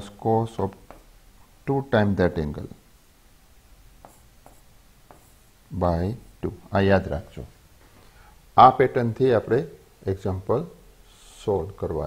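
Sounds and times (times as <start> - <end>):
stylus scratching on tablet: 4.0 - 5.5.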